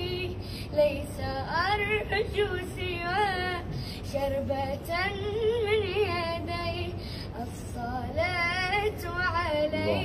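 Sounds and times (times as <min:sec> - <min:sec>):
boy singing: 0:00.0 - 0:10.0.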